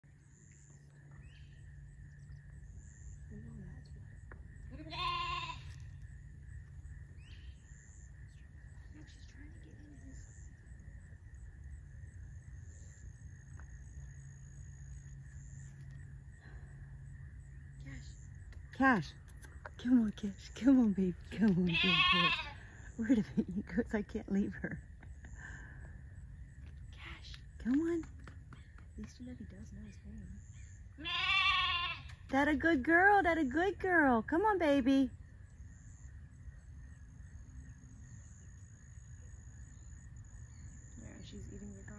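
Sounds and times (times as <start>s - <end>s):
lamb bleating: 4.8s - 5.7s, 21.7s - 22.6s, 31.0s - 32.1s.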